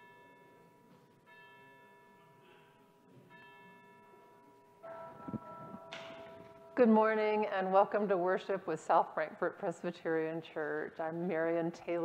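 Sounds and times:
bell ringing: 3.3s - 7.8s.

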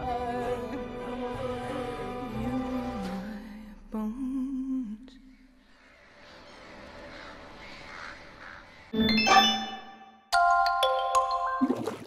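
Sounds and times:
wordless humming voice: 0.0s - 5.6s.

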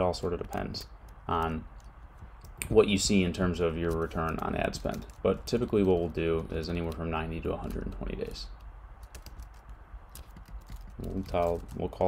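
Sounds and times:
keyboard typing: 0.0s - 12.0s.

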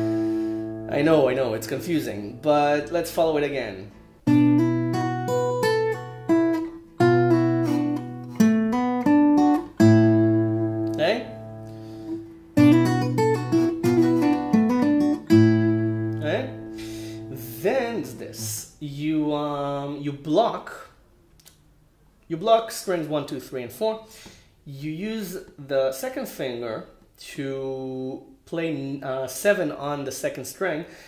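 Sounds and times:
fingerstyle acoustic guitar: 0.0s - 0.9s, 3.9s - 18.5s.

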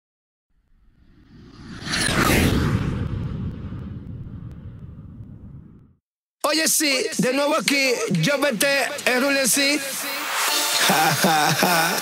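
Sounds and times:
low rumble: 0.6s - 6.0s
whoosh sound effect: 0.8s - 5.8s.

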